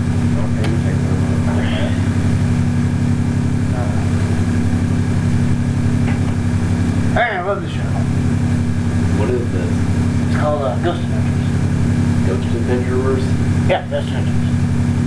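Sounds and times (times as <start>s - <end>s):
loud low hum: 0.0s - 15.0s
person speaking: 0.3s - 2.6s, 3.6s - 4.8s, 7.0s - 14.6s.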